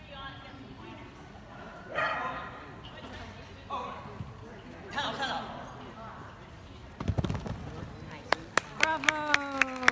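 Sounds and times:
dog barking: 1.9s - 2.4s.

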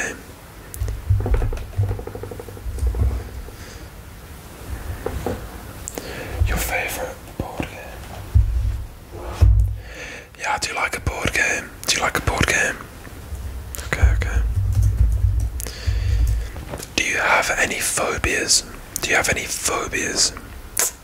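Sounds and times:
man whispering: 0.0s - 0.3s, 6.0s - 8.2s, 10.3s - 12.9s, 13.7s - 14.5s, 15.6s - 21.0s
low muffled rumble: 0.8s - 7.2s, 8.1s - 9.9s, 13.0s - 17.0s.

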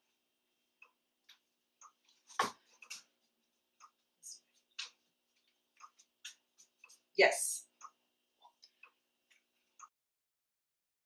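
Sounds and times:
pendulum clock ticking: 0.8s - 2.1s, 5.7s - 9.9s.

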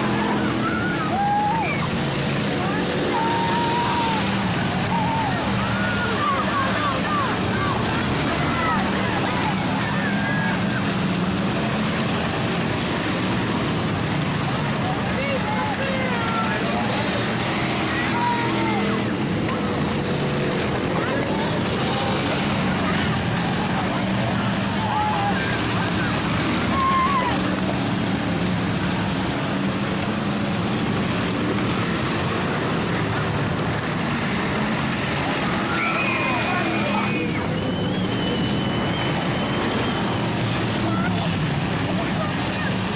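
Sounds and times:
people's voices from stands: 0.0s - 42.9s
race car engines droning: 0.0s - 42.9s.

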